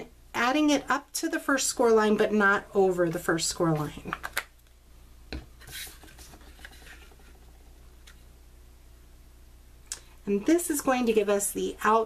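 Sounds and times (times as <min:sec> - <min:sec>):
cardstock swishing and rubbing: 0:05.6 - 0:07.4.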